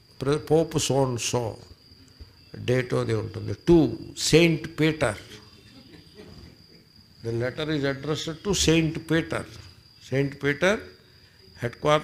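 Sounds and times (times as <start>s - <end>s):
faint high-pitched whine: 0.0s - 12.0s
man speaking: 2.6s - 5.4s, 7.2s - 10.9s, 11.6s - 12.0s.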